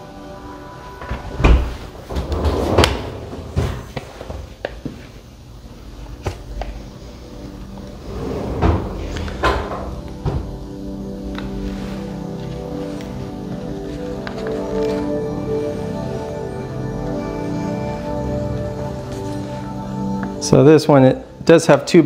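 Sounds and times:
background music: 0.0s - 3.9s, 5.8s - 22.0s
refrigerator door knocks and thuds: 1.4s - 3.9s, 8.6s - 10.6s.

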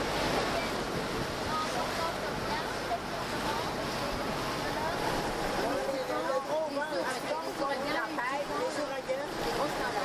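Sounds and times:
water washing around boat: 0.0s - 10.0s.

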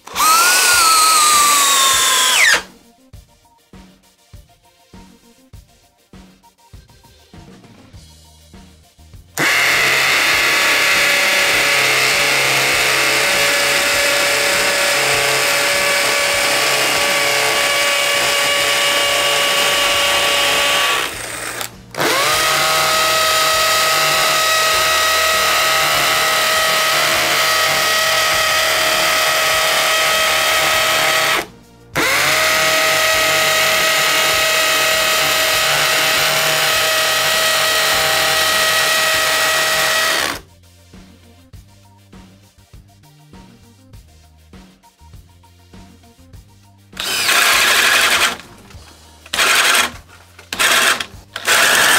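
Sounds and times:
hammer drill drilling concrete: 0.0s - 2.7s, 9.4s - 40.4s, 47.0s - 51.9s.

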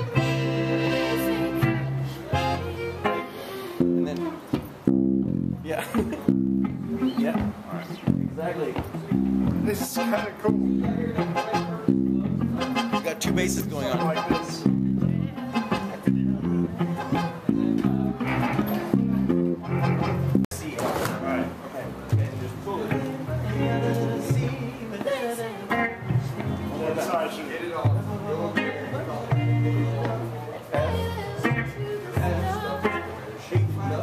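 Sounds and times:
bowed double bass: 0.0s - 3.2s, 3.8s - 20.5s, 21.5s - 25.0s, 25.7s - 27.0s, 27.8s - 34.0s
guitar plucked notes: 0.0s - 20.4s, 21.4s - 34.0s.

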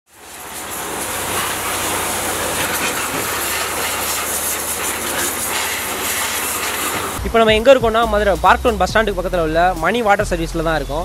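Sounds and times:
pump motor humming: 0.1s - 7.3s
pressure washer spray hissing: 0.1s - 11.0s.

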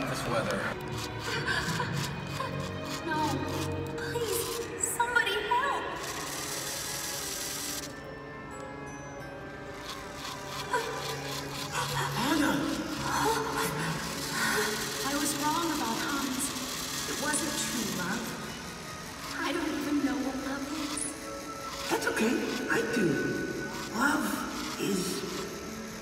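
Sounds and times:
small electric motor whirring: 0.5s - 5.0s, 5.8s - 26.0s.

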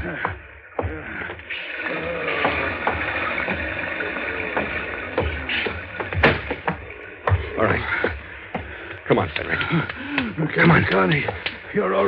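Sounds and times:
water hissing: 0.9s - 9.0s.

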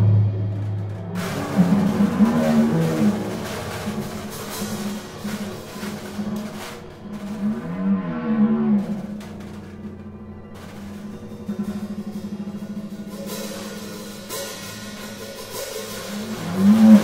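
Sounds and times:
drum and cymbal hits: 0.0s - 17.0s
low sliding moaning tones: 0.0s - 17.0s.

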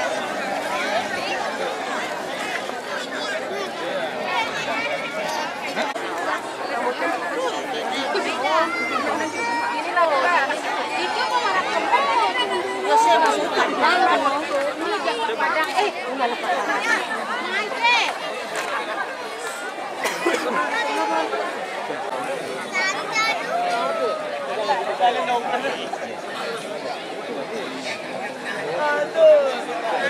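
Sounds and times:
crowd chattering: 0.0s - 30.0s.

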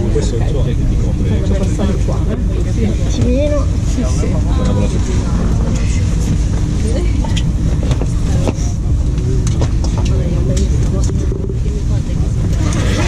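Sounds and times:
train running gear rumble: 0.0s - 13.0s.

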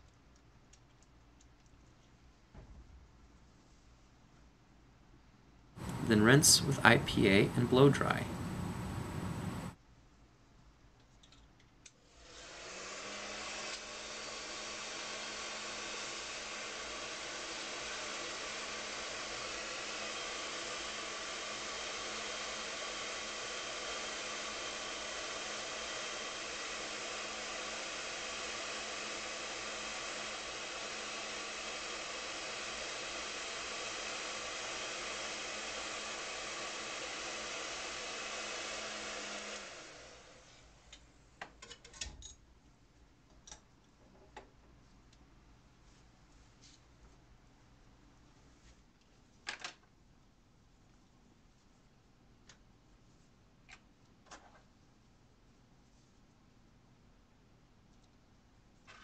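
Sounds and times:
faint low hum: 0.0s - 11.7s.

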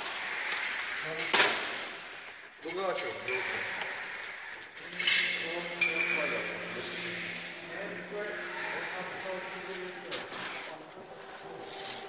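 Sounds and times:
sharp metallic clinks: 5.0s - 6.6s
steady low hum: 5.4s - 10.1s.

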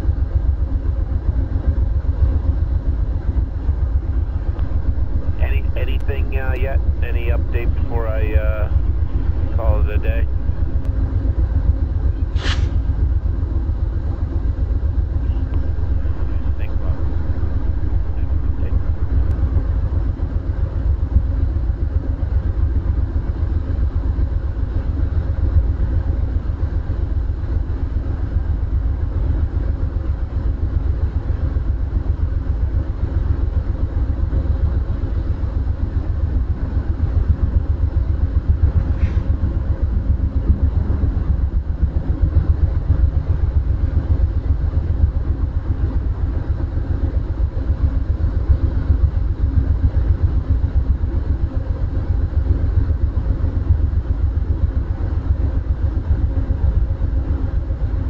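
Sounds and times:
diesel locomotive idling: 1.2s - 20.2s.

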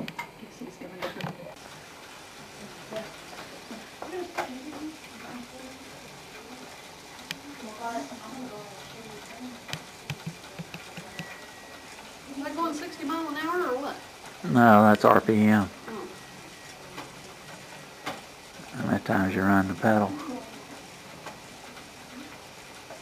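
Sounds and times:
steady low hiss: 0.0s - 23.0s.

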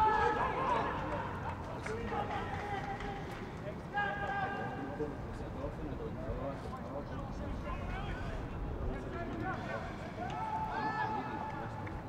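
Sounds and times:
stadium background noise: 0.0s - 12.0s
people shouting: 9.6s - 11.4s.

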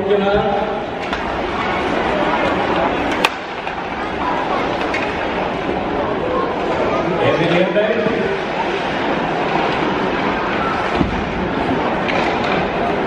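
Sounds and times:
crowd chattering: 0.0s - 13.0s
sharp crack of puck: 3.1s - 3.5s.

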